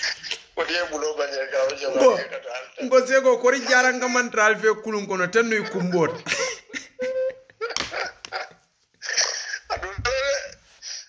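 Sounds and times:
man speaking: 0.6s - 6.3s
man laughing heartily: 5.5s - 10.6s.

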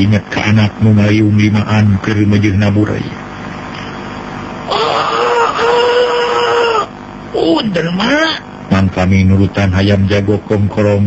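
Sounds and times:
high wailing cry: 4.7s - 7.0s.

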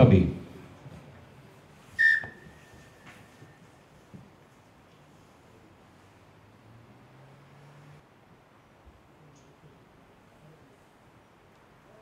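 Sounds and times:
referee's whistle blast: 2.0s - 3.0s.

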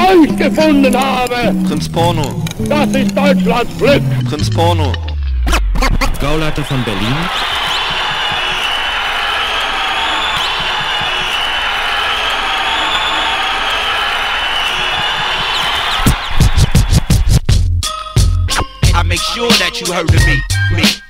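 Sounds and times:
crowd cheering and shouting: 0.0s - 17.4s
hip-hop beat with heavy bass: 1.4s - 8.6s, 16.0s - 21.0s.

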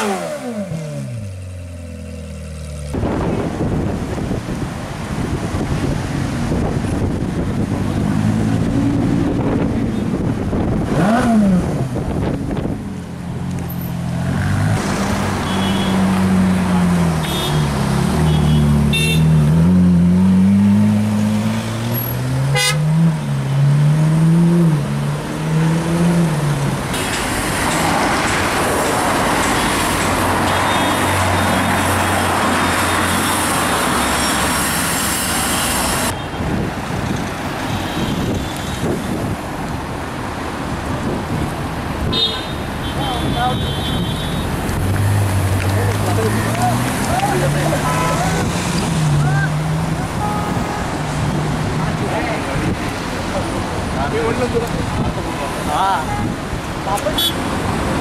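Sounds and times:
car engine revving: 0.0s - 3.4s, 44.5s - 54.8s
traffic and road noise: 0.0s - 58.0s
car horns tooting: 15.3s - 16.1s, 17.2s - 19.6s, 22.4s - 23.1s, 37.7s - 39.0s, 42.0s - 44.6s, 47.2s - 48.5s, 50.0s - 51.1s, 57.0s - 57.5s.

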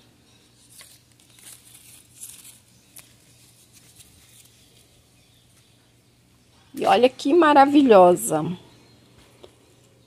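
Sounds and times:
leaves rustling by hand: 0.4s - 5.1s.

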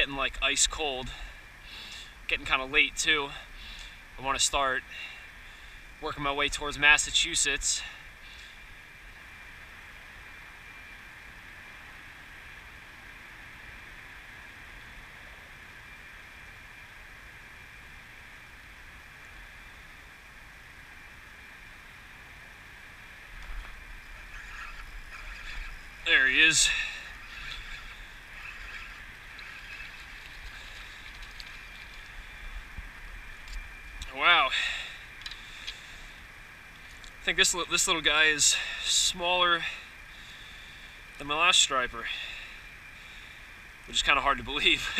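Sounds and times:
faint outdoor hum: 0.0s - 44.9s.

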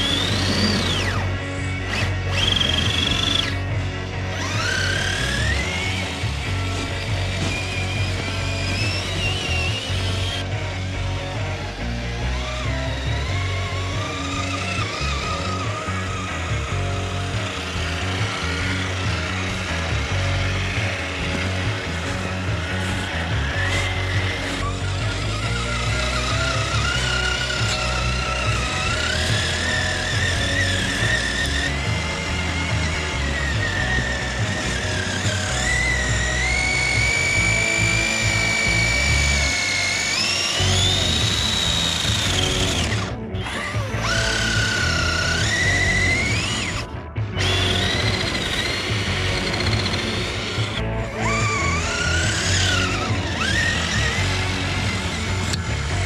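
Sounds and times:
electric motor and gear whine: 0.0s - 56.0s
music track: 0.0s - 56.0s.

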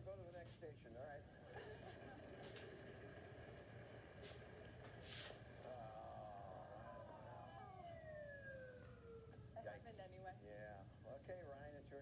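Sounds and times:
long falling tone through small speaker: 1.6s - 9.8s.

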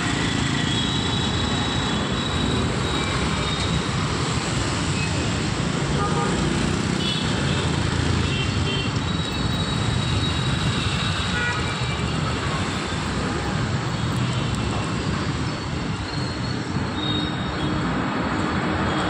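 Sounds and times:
small engines droning in traffic: 0.0s - 19.0s.

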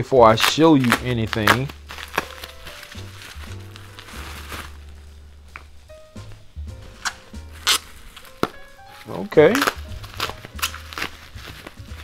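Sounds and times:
plastic wrapping crinkling: 0.0s - 12.0s
soft background music: 0.0s - 12.0s.

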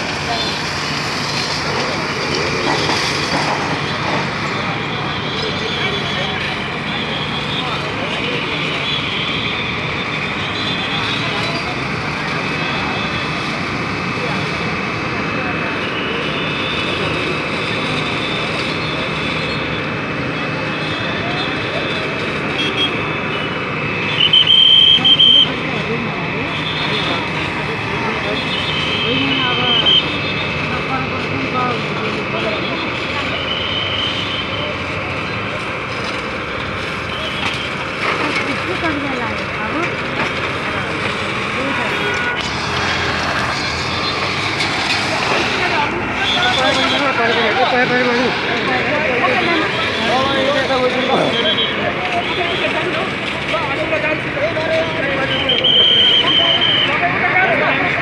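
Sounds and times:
crowd chatter: 0.0s - 58.0s
fire engine motor running: 0.0s - 58.0s.

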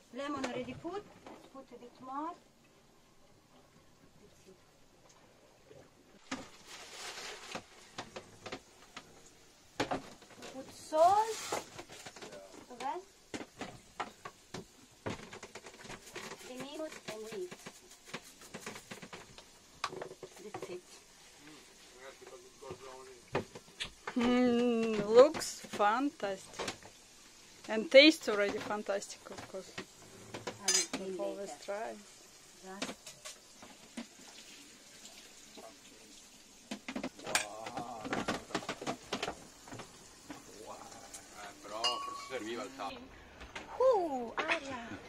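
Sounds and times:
cutlery and dish clinking: 30.6s - 31.0s, 37.3s - 37.6s, 41.7s - 42.6s.

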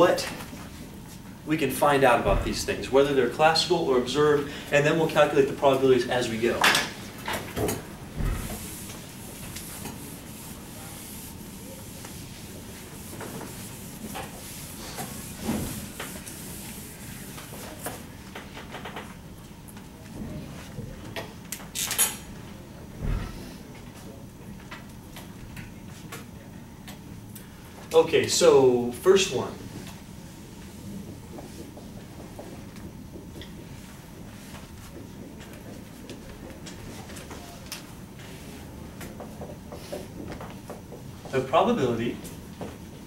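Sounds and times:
whiteboard eraser rubbing: 8.4s - 18.0s
low thump: 23.0s - 23.4s.

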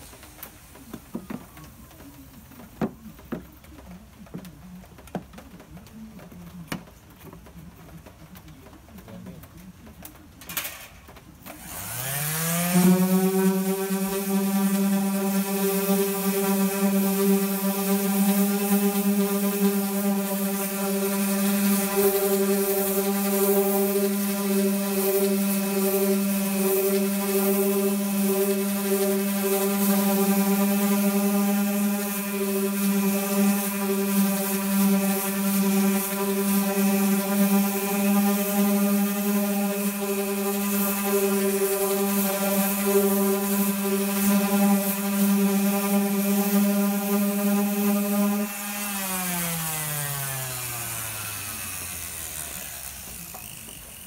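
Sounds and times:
orbital sander running: 0.0s - 3.5s, 11.4s - 54.0s
sander spinning down: 0.0s - 5.2s, 11.4s - 54.0s.

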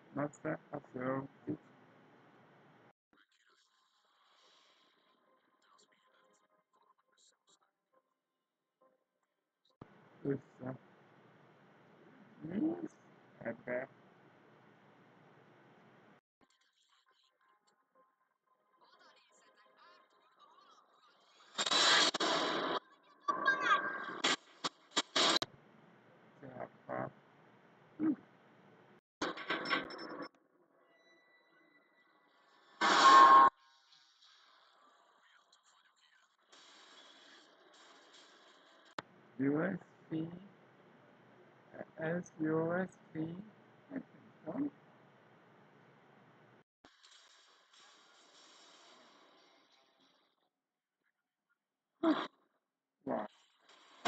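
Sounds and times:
short voice-like sound: 12.4s - 13.9s, 28.0s - 28.2s.

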